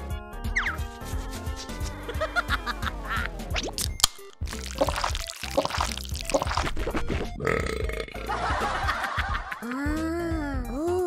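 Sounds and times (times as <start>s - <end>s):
background music: 0.0s - 11.0s
cartoon burp: 4.7s - 8.3s.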